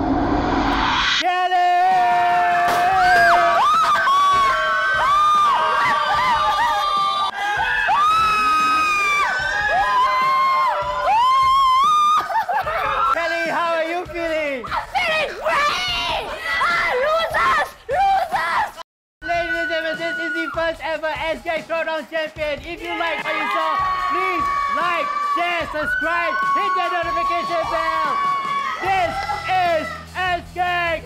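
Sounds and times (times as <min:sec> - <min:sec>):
rising swell of noise: 0:00.0 - 0:01.3
group cheering and shrieking: 0:00.9 - 0:13.2, 0:22.9 - 0:30.1.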